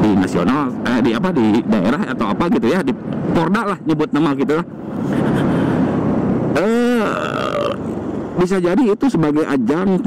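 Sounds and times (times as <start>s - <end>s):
man's drawn-out hesitation: 0.0s - 10.0s
wind and road noise: 0.0s - 10.0s.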